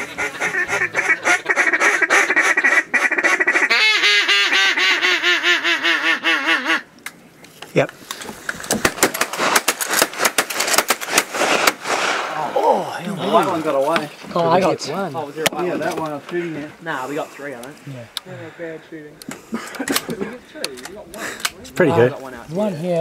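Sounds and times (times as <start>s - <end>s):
ducks quacking and honking: 0.0s - 6.9s
sharp cracks and clicks: 7.0s - 12.0s.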